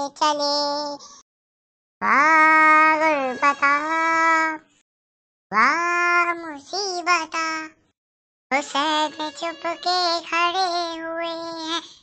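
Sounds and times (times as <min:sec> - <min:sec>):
high-pitched cartoon voice: 0:02.0 - 0:04.6, 0:05.5 - 0:07.7, 0:08.5 - 0:11.9.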